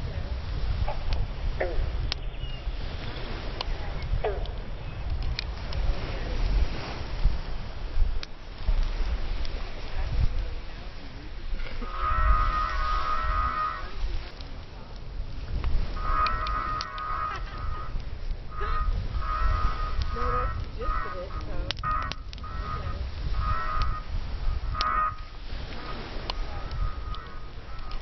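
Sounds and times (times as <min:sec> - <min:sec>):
sharp crackles: 0:00.0 - 0:28.0
steady low rumble: 0:00.0 - 0:28.0.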